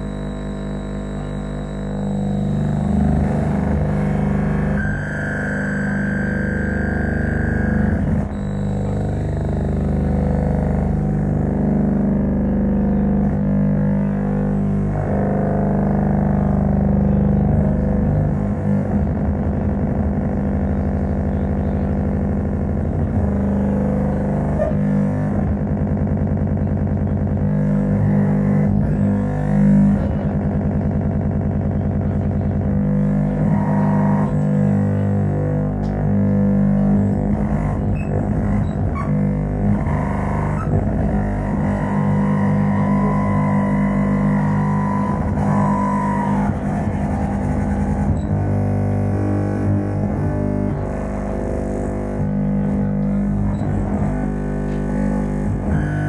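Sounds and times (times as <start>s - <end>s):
fast pulsing texture: 0.0s - 56.0s
low electronic drone tones: 0.0s - 56.0s
thin high tone: 1.2s - 9.2s.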